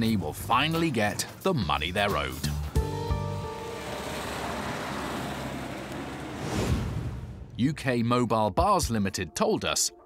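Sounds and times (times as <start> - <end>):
held music chord: 2.6 - 6.0
rushing whoosh: 4.6 - 7.6.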